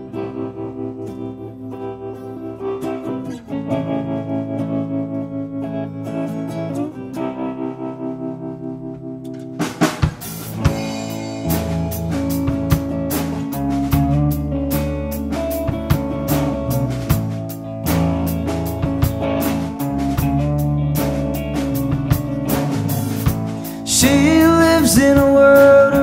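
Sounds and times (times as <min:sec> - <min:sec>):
bass guitar: 0:00.0 - 0:26.0
electric guitar ringing chords: 0:00.0 - 0:26.0
drum kit with cymbals: 0:09.4 - 0:26.0.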